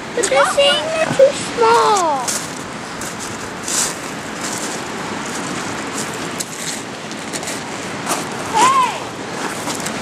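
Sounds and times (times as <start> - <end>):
steady rushing outdoor noise: 0.0 - 10.0.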